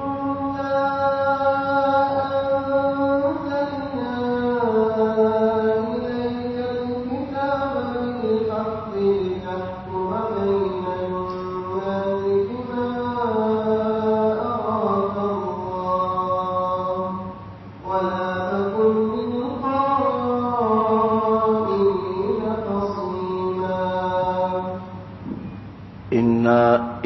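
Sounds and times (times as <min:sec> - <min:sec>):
person chanting recitation: 0:00.0 - 0:25.0, 0:26.1 - 0:27.0.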